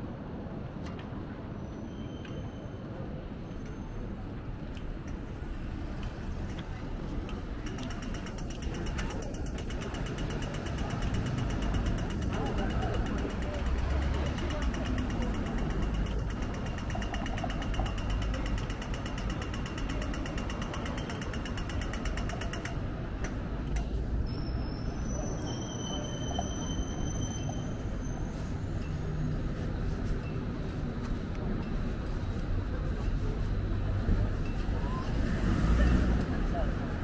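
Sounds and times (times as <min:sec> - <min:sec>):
cars passing: 0:04.4 - 0:37.0
crossing signal ticking: 0:07.1 - 0:25.0.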